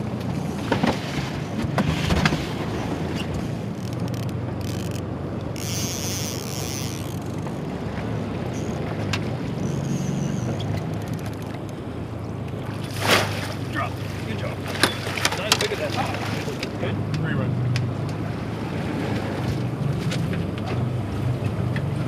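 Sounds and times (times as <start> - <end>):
boat motor running: 0.0 - 22.0
choppy sea wash: 0.0 - 22.0.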